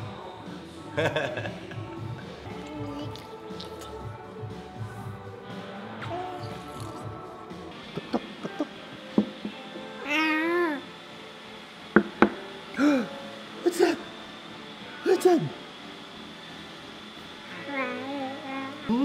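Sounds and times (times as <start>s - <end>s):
background music: 0.0s - 19.0s
infant squealing: 10.0s - 10.8s.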